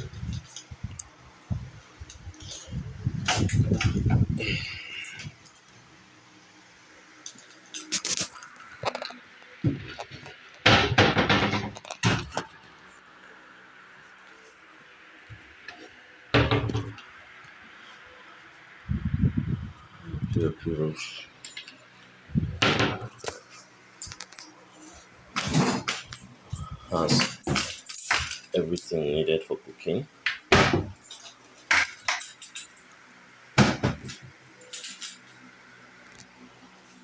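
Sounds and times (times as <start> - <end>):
cupboard doors knocking shut: 30.5 - 30.9.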